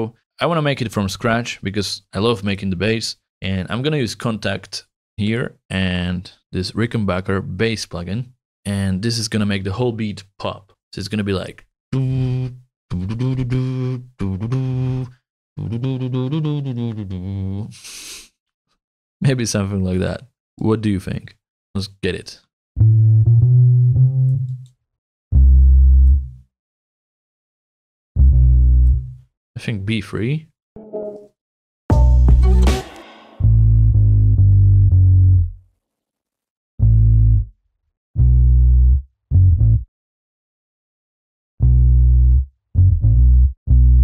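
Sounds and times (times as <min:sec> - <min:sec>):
man humming: 0:11.9 - 0:18.2
electric bass low notes: 0:22.8 - 0:24.6, 0:25.3 - 0:26.4, 0:28.2 - 0:29.2, 0:33.4 - 0:35.6, 0:36.8 - 0:37.5, 0:38.2 - 0:39.9, 0:41.6 - 0:44.0.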